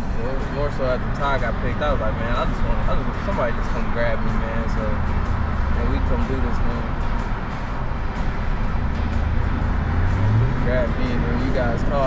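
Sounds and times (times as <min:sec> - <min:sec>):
car engine hum: 0:00.0 - 0:12.0
road noise: 0:00.0 - 0:12.0.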